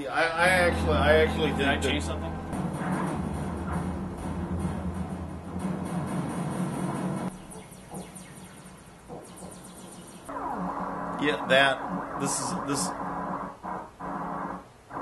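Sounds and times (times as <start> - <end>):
synthesizer drone with flutter: 0.4 - 5.8, 6.9 - 15.0.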